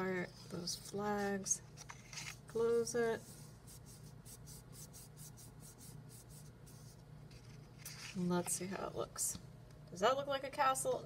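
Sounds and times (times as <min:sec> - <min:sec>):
hands rubbing paper: 0:03.1 - 0:08.4.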